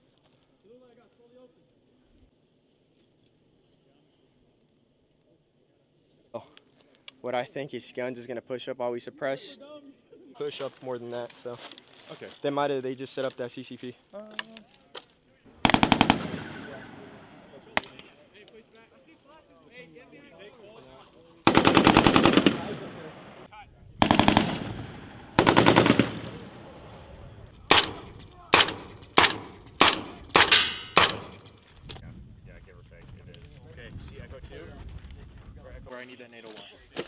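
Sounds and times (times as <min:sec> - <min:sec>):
automatic gunfire bursts: 0:15.6 - 0:16.7, 0:21.5 - 0:22.9, 0:24.0 - 0:26.4
single gunshots with echo: 0:15.6 - 0:18.0, 0:21.5 - 0:26.7, 0:27.7 - 0:31.4.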